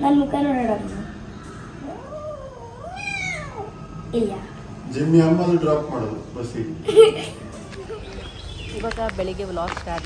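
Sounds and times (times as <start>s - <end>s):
kitten meowing: 2.7s - 3.8s.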